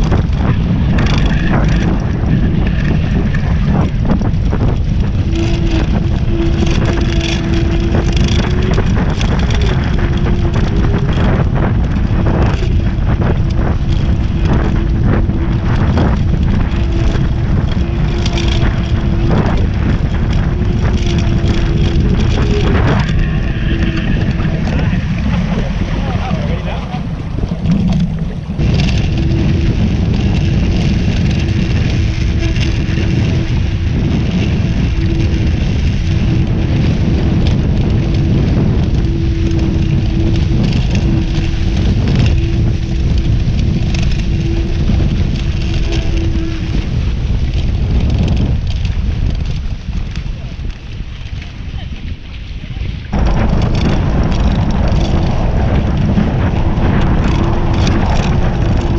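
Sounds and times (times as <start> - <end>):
steady hum: 0.0 - 47.4
water rushing past hulls: 0.0 - 58.9
wind buffeting microphone: 0.0 - 58.9.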